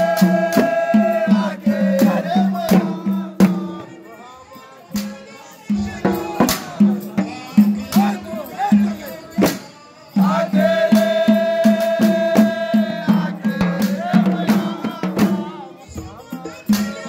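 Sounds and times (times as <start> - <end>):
frame drums beating: 0.0 - 4.0, 4.9 - 17.0
men chanting in unison: 0.0 - 17.0.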